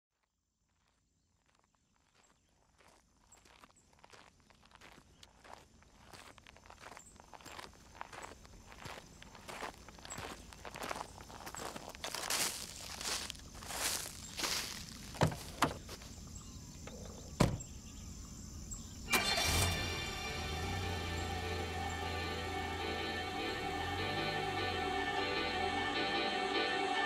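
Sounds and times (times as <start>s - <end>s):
crunching footsteps: 0.1s - 16.4s.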